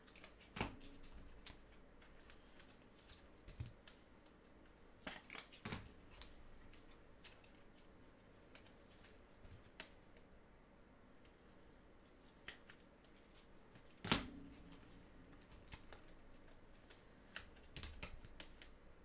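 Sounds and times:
faint low room hum: 0:00.0 - 0:19.0
trading cards clicking and rustling: 0:12.3 - 0:18.9.

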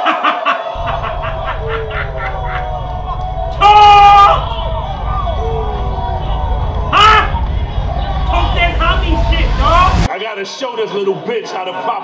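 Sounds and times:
man laughing: 0:00.0 - 0:02.9
low rumble: 0:00.8 - 0:10.1.

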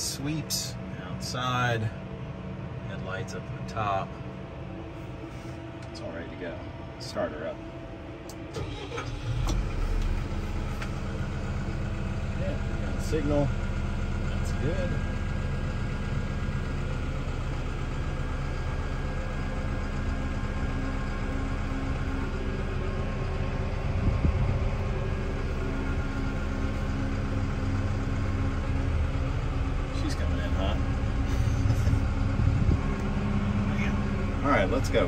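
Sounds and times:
diesel engine idling: 0:00.0 - 0:35.0
rough engine rumble: 0:00.0 - 0:35.0.

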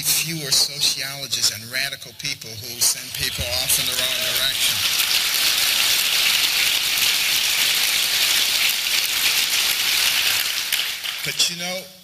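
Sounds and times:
audience applauding: 0:03.4 - 0:11.6.

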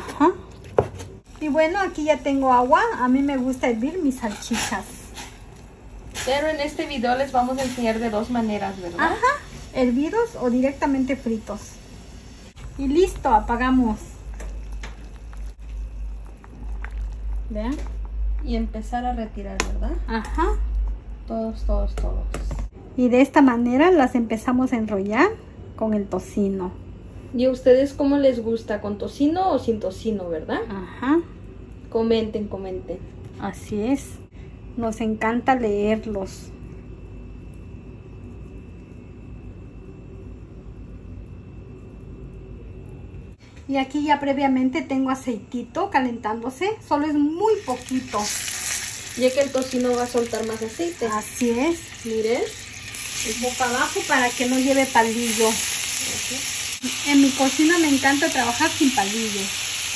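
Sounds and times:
low background hum: 0:00.0 - 0:59.9
water bubbling in a saucepan: 0:11.4 - 0:17.7, 0:47.5 - 0:58.8.

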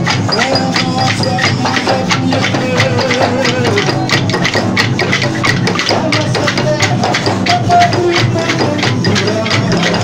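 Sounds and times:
frame drums: 0:00.0 - 0:10.0
wooden clappers clacking: 0:00.0 - 0:10.0.

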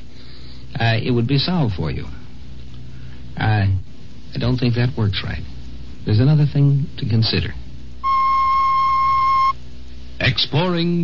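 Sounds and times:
electronic beep tone: 0:08.0 - 0:09.6.

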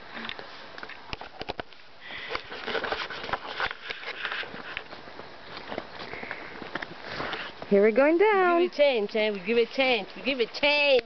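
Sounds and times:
clicks and rustles: 0:00.2 - 0:07.7
person sniffing and breathing: 0:02.0 - 0:02.9, 0:06.0 - 0:07.6.

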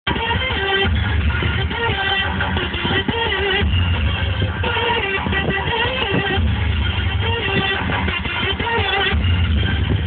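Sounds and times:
bass-heavy music on car stereo: 0:00.0 - 0:10.0.

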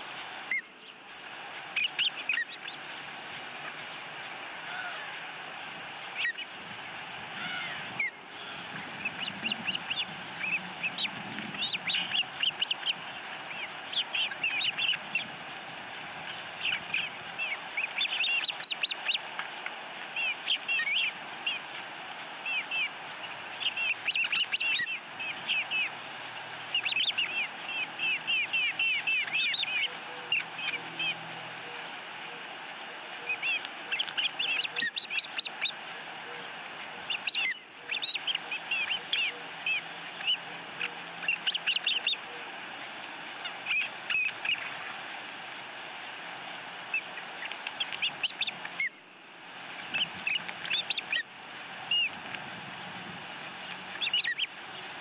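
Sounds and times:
ospreys chirping: 0:01.6 - 0:19.3, 0:20.1 - 0:21.8, 0:22.4 - 0:42.5, 0:43.3 - 0:45.0, 0:46.8 - 0:49.0, 0:49.7 - 0:55.0.

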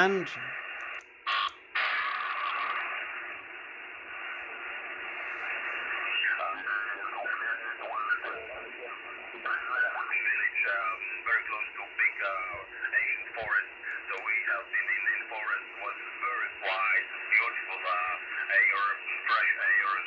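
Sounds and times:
distant radio voice: 0:00.0 - 0:00.6, 0:05.5 - 0:20.0
radio static hiss: 0:00.0 - 0:20.0.

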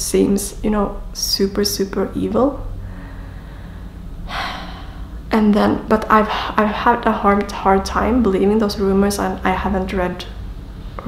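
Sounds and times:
low hum: 0:00.0 - 0:11.0
woman breathing in: 0:02.8 - 0:05.3.

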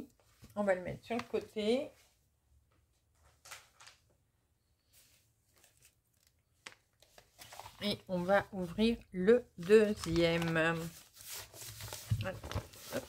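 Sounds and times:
magazines rustling on a table: 0:03.0 - 0:04.2, 0:04.8 - 0:13.0.

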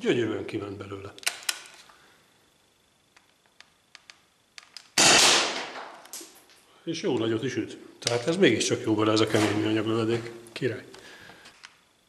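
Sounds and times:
gun handling clicks: 0:01.2 - 0:01.8, 0:03.2 - 0:05.2.

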